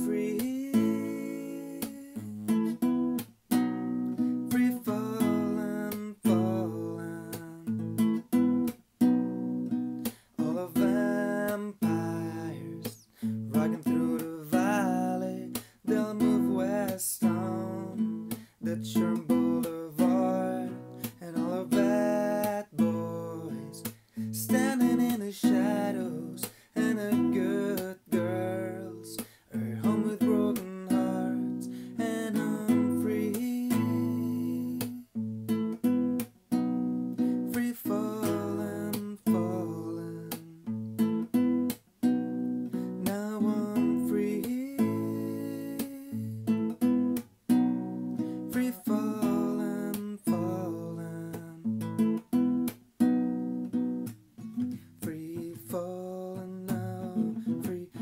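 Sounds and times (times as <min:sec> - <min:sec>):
nylon-string guitar strumming: 0:00.0 - 0:58.0.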